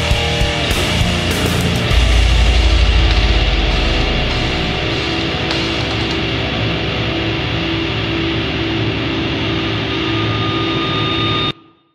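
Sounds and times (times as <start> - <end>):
heavy distorted guitars and bass: 0.0 - 11.6.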